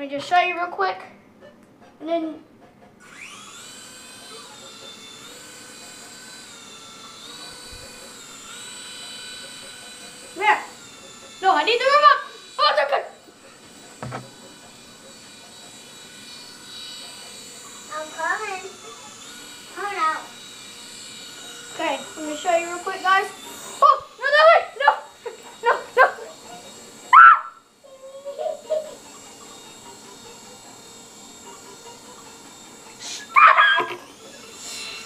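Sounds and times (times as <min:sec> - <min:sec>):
toy helicopter motor whining: 0:02.6 - 0:35.0.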